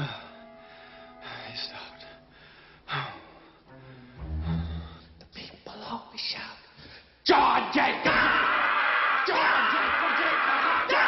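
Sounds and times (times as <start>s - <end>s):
faint background music: 0.0s - 7.9s.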